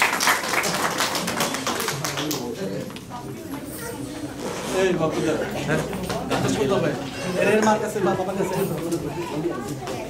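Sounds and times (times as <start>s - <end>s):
people applauding: 0.0s - 3.0s.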